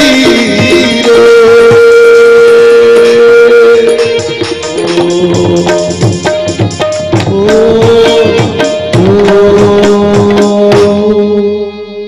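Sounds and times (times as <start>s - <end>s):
man singing long note: 0.0s - 5.9s.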